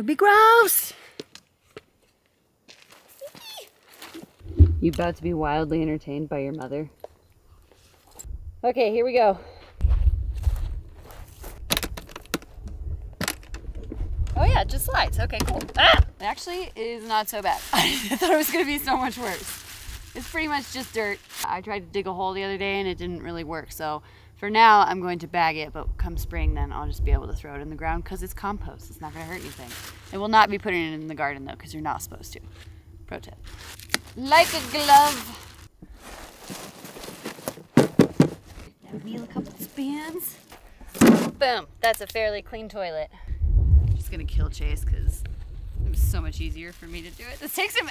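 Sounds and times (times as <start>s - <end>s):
wind rumble on microphone: 4.4s - 6.2s, 8.2s - 8.6s, 9.8s - 11.7s, 12.4s - 16.7s, 25.5s - 29.7s, 43.2s - 47.4s
plastic bag rustling: 16.4s - 21.5s, 29.0s - 30.8s, 33.4s - 40.6s, 46.3s - 47.9s.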